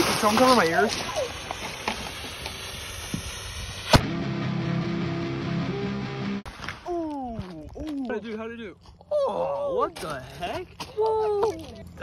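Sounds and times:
fuse hissing and sparking: 0:00.0 - 0:04.1
firecracker bang: 0:00.0 - 0:04.2.

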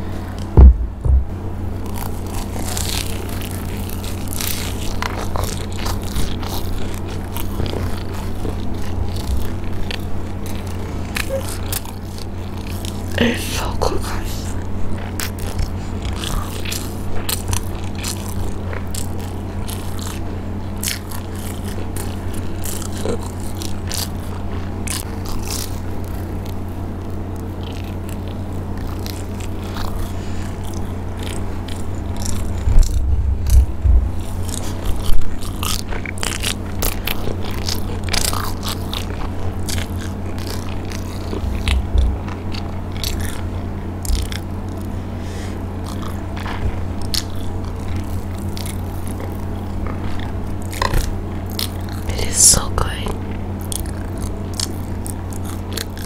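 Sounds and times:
fried coating crunching: 0:00.0 - 0:56.0
steady low hum: 0:00.0 - 0:56.0
wet chewing: 0:00.0 - 0:56.0.

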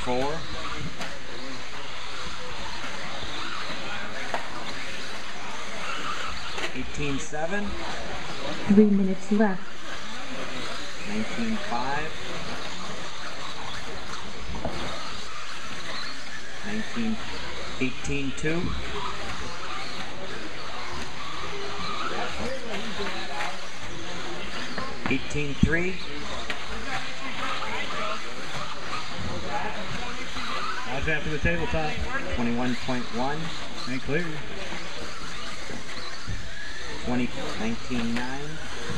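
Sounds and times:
indistinct chatter in echoing hall: 0:00.0 - 0:38.9
rc car motors and tyres: 0:00.0 - 0:38.9.

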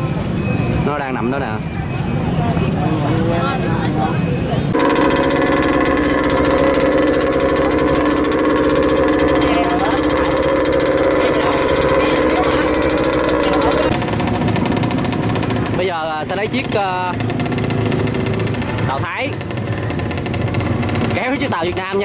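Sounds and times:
model boat engine buzzing: 0:04.7 - 0:22.0.

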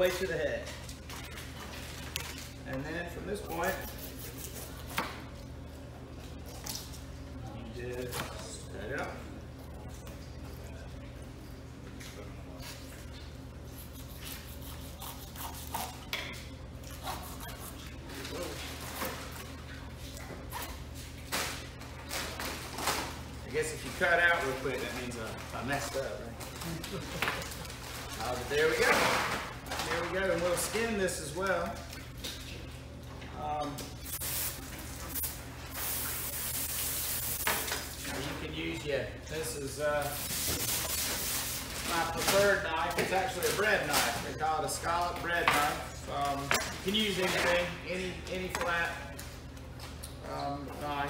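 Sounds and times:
low background hum: 0:00.0 - 0:51.0.

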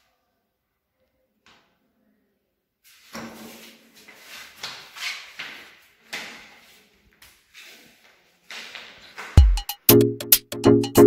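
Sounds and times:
footsteps on tiled floor: 0:02.8 - 0:09.6.

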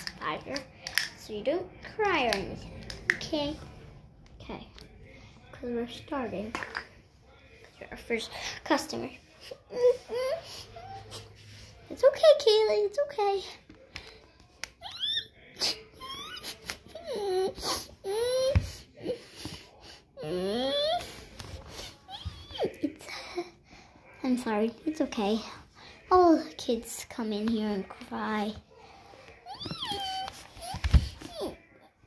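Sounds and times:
child whining cry: 0:29.4 - 0:31.8.

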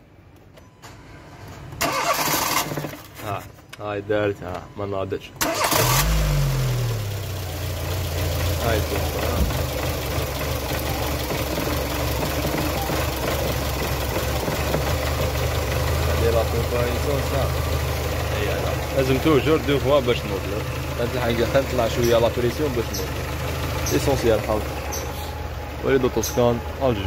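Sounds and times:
car engine idling: 0:05.5 - 0:27.0.

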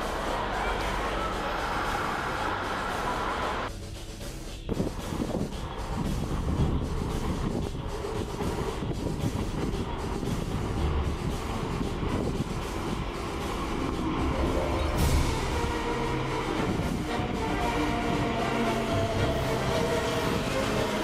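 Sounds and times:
electric train wheels rumbling: 0:00.0 - 0:21.0.

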